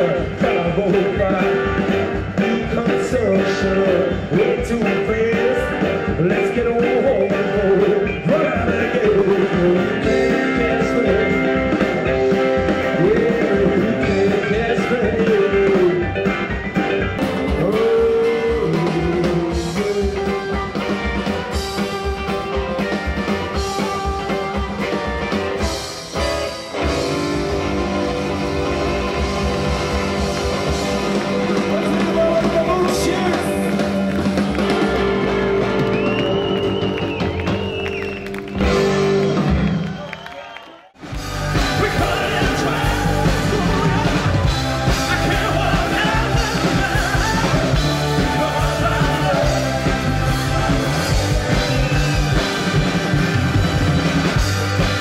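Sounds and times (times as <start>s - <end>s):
person singing: 0.0s - 16.5s, 17.2s - 22.9s, 41.3s - 53.3s
rock and roll band playing: 0.0s - 40.4s, 41.0s - 55.0s.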